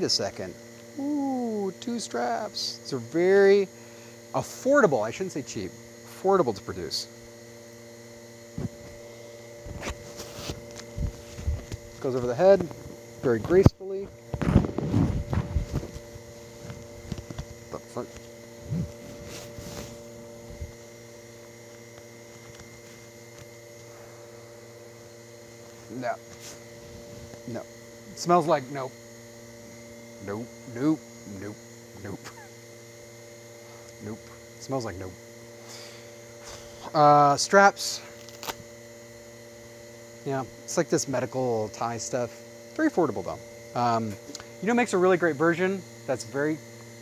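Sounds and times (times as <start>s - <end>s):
steady electrical hum: 0.0s - 47.0s
respirator straps rustling: 9.6s - 13.6s, 14.2s - 24.0s.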